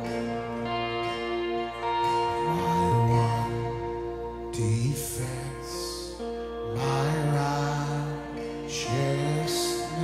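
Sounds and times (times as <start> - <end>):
acoustic guitar: 0.0 - 10.0
sustained chords: 0.0 - 10.0
man singing: 2.0 - 10.0.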